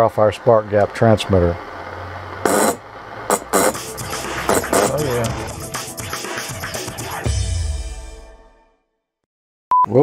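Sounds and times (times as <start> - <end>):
spark gap crackling: 0.8 - 5.7
music: 3.4 - 9.2.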